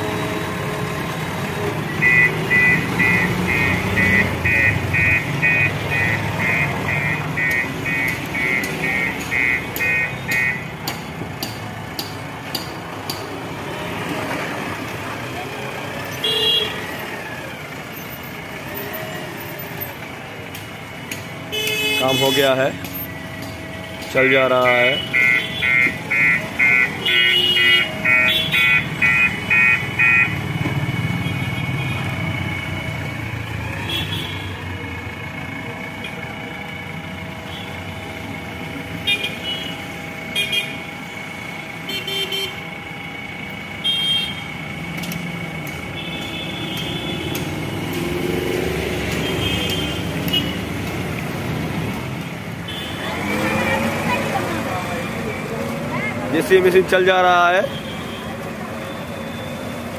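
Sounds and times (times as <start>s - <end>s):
diesel engine running: 0.0s - 59.9s
street traffic: 0.0s - 59.9s
fast electronic beeps: 1.9s - 10.7s, 25.0s - 27.0s, 28.0s - 30.4s
vehicle horn toots: 2.0s - 10.7s, 16.2s - 16.9s, 21.5s - 22.6s, 24.6s - 30.4s, 33.8s - 34.5s, 39.0s - 40.8s, 41.9s - 42.6s, 43.8s - 44.5s, 45.9s - 47.8s, 49.1s - 50.6s.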